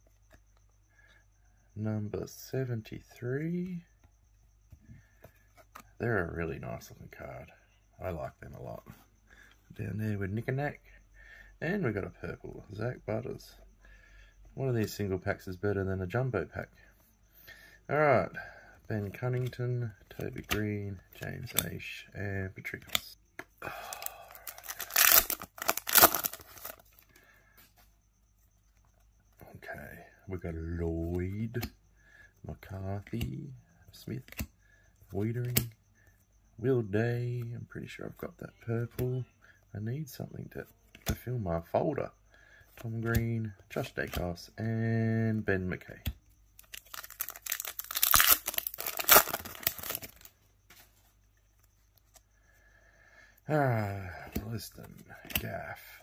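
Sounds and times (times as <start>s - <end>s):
faint plastic crinkling: 22.6s - 29.4s, 46.4s - 52.4s
plastic wrapper tearing: 24.4s - 26.8s, 46.6s - 50.3s.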